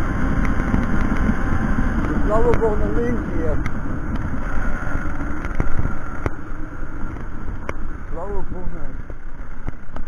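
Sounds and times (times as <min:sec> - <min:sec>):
wind on microphone: 0:00.0 - 0:08.1
moped engine running: 0:00.0 - 0:10.0.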